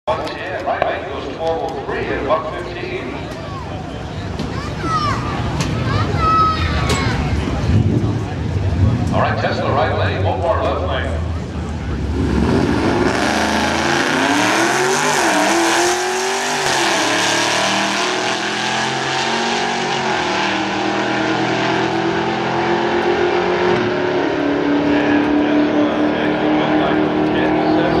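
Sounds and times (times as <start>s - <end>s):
car engine accelerating hard: 7.2s - 28.0s.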